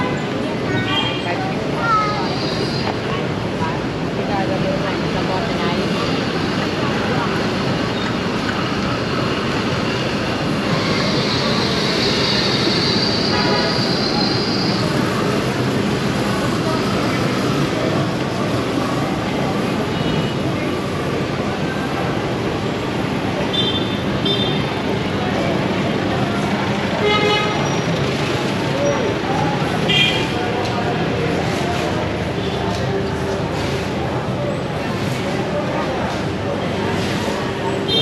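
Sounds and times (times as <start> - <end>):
crowd chatter: 0.0 - 38.0
traffic noise: 0.0 - 38.0.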